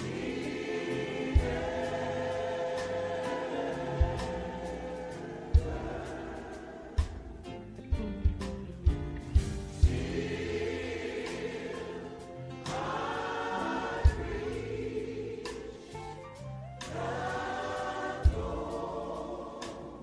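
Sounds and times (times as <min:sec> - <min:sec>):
gospel choir singing: 0:00.0 - 0:20.0.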